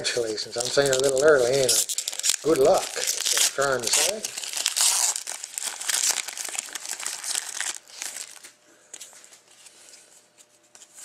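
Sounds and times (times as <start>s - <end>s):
foil wrapper tearing and crinkling: 0.1s - 8.5s.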